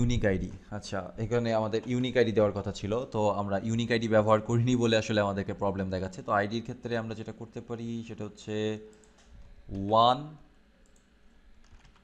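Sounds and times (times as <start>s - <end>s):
keyboard typing: 10.8s - 12.0s.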